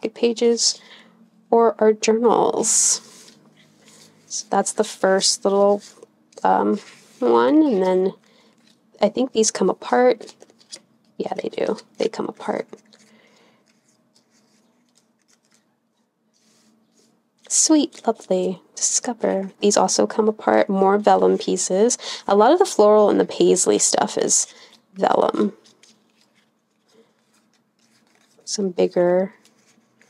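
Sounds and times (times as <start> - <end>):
faint paper rustling: 2.6 - 19.0, 23.8 - 30.0.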